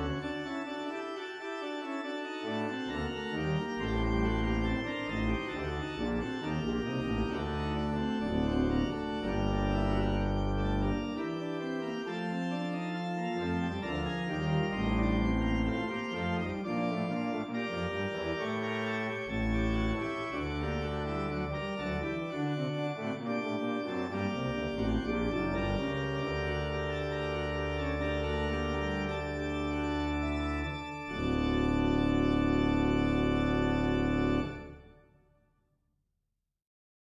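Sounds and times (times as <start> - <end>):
organ chords: 0.0 - 35.2.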